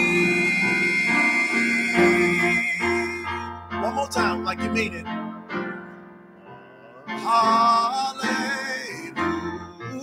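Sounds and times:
man singing: 0.0 - 5.0, 7.1 - 10.0
instrumental accompaniment: 0.0 - 10.0.

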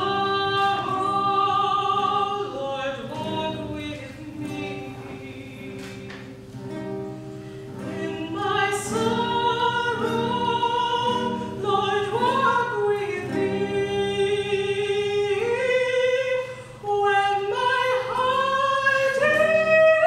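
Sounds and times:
woman singing slow song: 0.0 - 7.1, 7.7 - 20.0
nylon-string guitar: 0.0 - 20.0.

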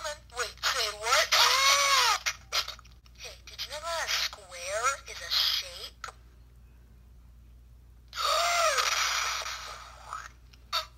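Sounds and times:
person screaming through small speaker: 8.2 - 8.9.

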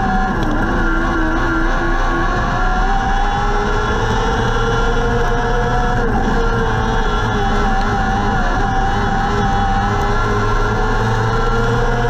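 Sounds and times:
engine running at high revs: 0.0 - 12.0.

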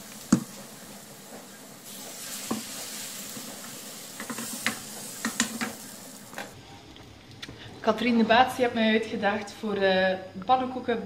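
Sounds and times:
batter sizzling in a frying pan: 0.0 - 6.6.

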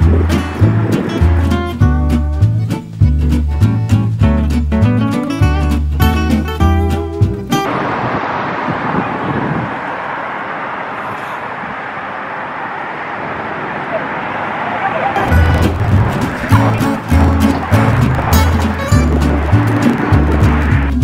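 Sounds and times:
guitar music: 0.0 - 7.7, 15.2 - 21.0
road traffic: 0.0 - 21.0
wind: 0.0 - 21.0.

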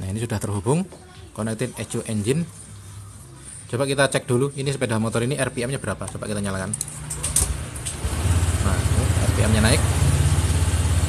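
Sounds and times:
scooter engine starting and idling: 7.1 - 11.0.

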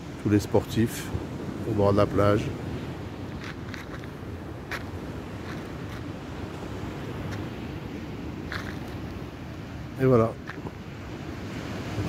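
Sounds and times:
wind rumbling on microphone: 0.0 - 12.0
footsteps on dirt path: 3.3 - 6.2, 7.2 - 7.6, 8.5 - 9.2, 10.4 - 10.8.

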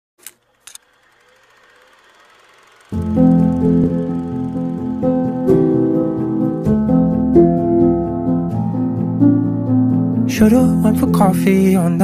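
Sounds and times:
short clicks: 0.2 - 1.2.

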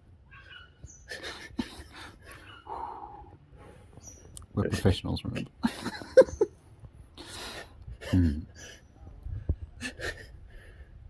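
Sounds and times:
man's stifled laughter: 1.1 - 2.4, 5.6 - 6.5, 7.9 - 8.8, 9.8 - 10.4.

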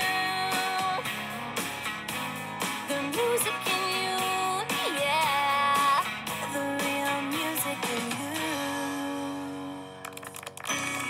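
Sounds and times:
pop-rock band with strummed guitar: 0.0 - 9.4.

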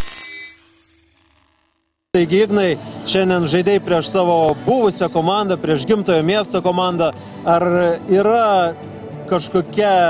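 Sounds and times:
electronic glitch hit with buzzing: 0.0 - 1.9.

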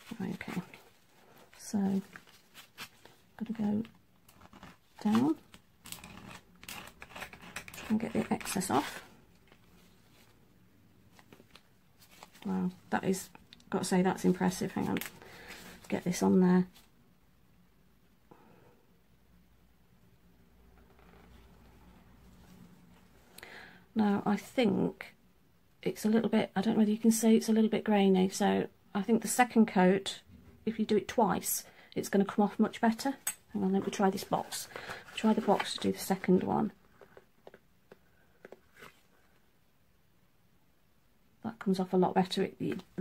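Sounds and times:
faint handling noise: 0.0 - 12.9.

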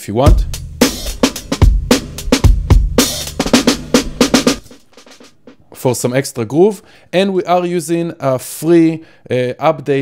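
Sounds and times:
processed drum loop: 0.2 - 6.2.

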